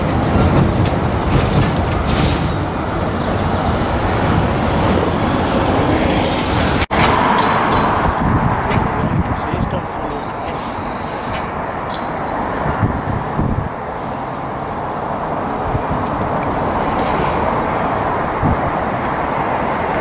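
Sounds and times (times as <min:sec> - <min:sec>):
diesel locomotive engine drone: 0:00.0 - 0:20.0.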